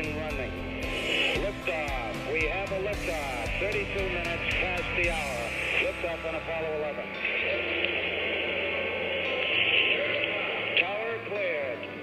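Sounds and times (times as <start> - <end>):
low sustained music: 0.0 - 12.0
rocket engines roaring: 0.0 - 12.0.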